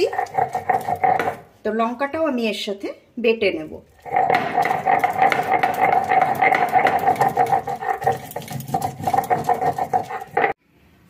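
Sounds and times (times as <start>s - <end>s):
stone grating on stone: 0.0s - 1.5s, 3.9s - 10.6s.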